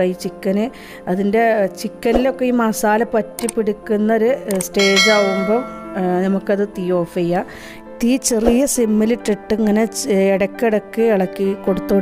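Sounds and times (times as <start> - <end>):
background music: 0.0 - 12.0
bell-like chime: 4.8 - 6.0.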